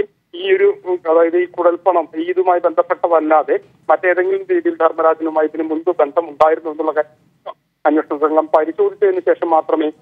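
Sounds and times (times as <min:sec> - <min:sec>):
news reader speaking: 0:00.0 - 0:10.0.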